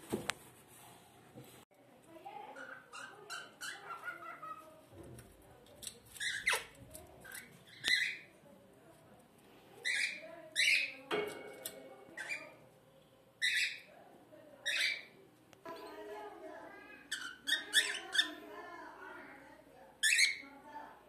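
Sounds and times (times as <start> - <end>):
parrots squawking: 2.5 - 4.8, 6.2 - 8.3, 9.8 - 11.0, 13.4 - 13.9, 14.6 - 15.2, 17.1 - 18.4, 20.0 - 20.4.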